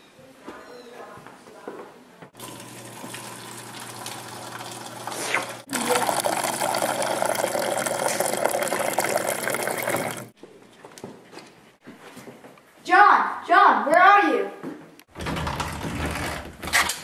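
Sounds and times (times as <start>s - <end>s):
water pouring into paper cup: 2.4s - 10.3s.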